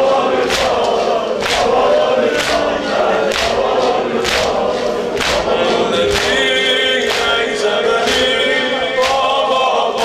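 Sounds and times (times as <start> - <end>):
men singing in chorus: 0.0 - 10.0
person reciting into microphone: 0.0 - 10.0.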